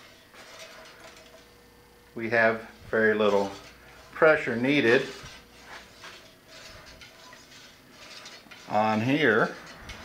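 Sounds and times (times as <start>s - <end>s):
wheel mechanism ticking and rattling: 0.0s - 1.6s, 2.9s - 10.0s.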